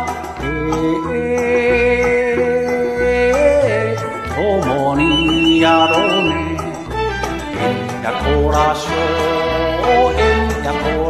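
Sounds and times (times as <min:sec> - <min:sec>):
karaoke backing track: 0:00.0 - 0:11.0
person singing folk song: 0:00.0 - 0:11.0.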